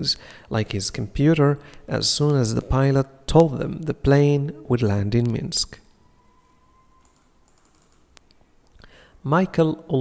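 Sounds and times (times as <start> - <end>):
computer mouse clicks: 7.0 - 8.8.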